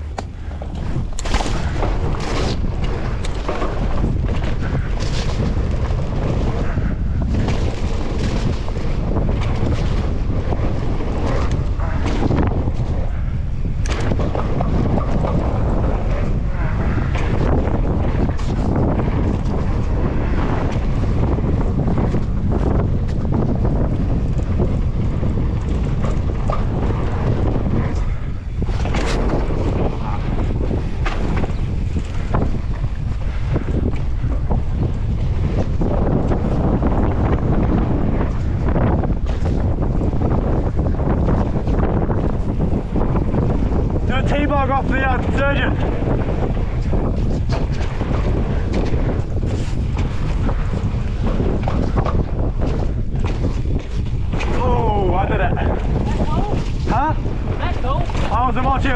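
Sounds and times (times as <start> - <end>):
bike knocks and rattles: 0.0 - 58.9
tyres rumbling on dirt: 0.0 - 58.9
wind buffeting microphone: 0.0 - 58.9.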